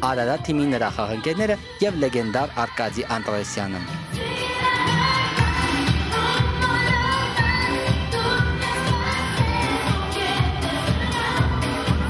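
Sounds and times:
pop backing track with beat: 0.0 - 12.0
woman singing into microphone: 0.3 - 12.0.

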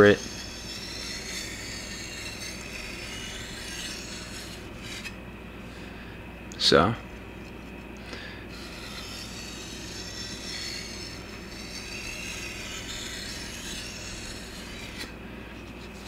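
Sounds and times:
steel blade scraping on whetstone: 0.0 - 5.2, 8.5 - 15.1.

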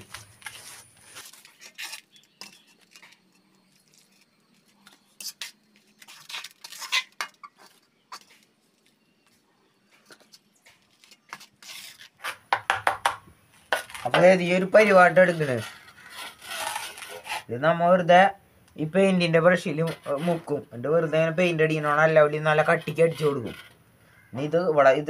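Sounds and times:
tool scraping metal pan: 22.6 - 23.8.

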